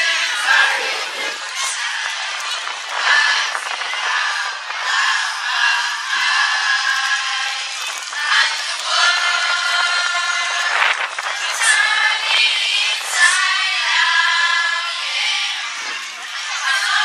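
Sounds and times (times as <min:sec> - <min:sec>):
children's choir singing: 0:00.0 - 0:17.0.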